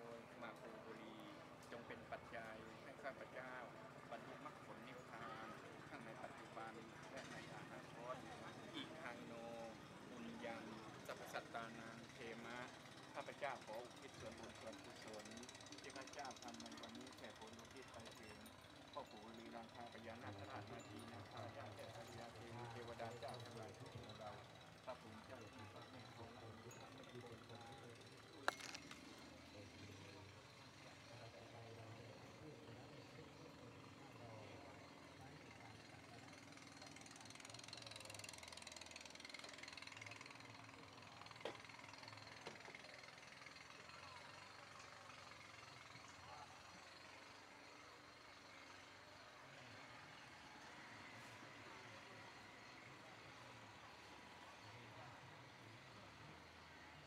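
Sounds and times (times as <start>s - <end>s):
faint voices talking: 0.0s - 57.0s.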